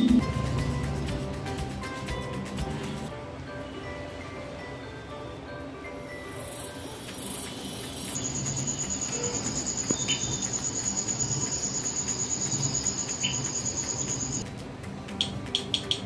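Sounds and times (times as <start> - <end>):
crickets chirping: 6.4 - 14.4.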